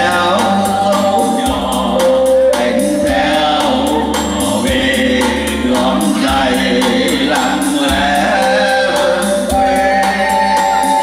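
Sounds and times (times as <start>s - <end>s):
backing music with steady beat: 0.0s - 11.0s
men singing into microphones: 0.0s - 11.0s.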